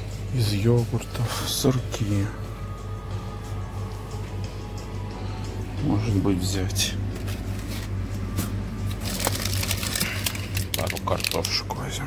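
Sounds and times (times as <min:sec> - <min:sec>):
steady low hum: 0:00.0 - 0:12.0
foil wrappers crinkling: 0:08.8 - 0:12.0.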